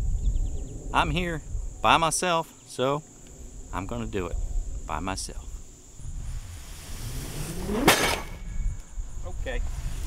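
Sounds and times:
cardboard box scraping truck bed: 6.3 - 8.4
box thumping on ground: 7.7 - 8.4.

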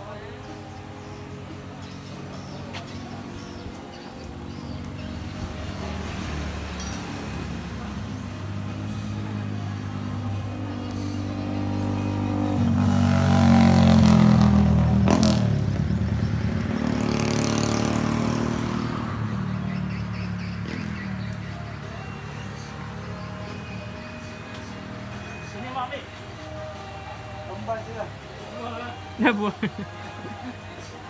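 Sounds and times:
motorcycle engine revving: 0.8 - 25.2.

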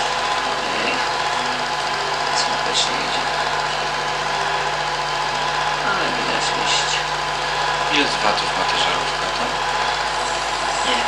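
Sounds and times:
film projector whirring: 0.0 - 11.0.

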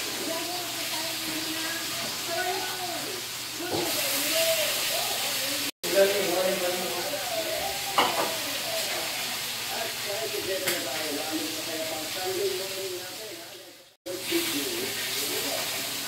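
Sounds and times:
food sizzling in frying pan: 0.0 - 16.0.

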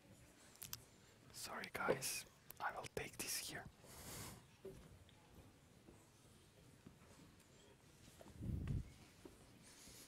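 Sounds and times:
person whispering: 1.3 - 3.8.

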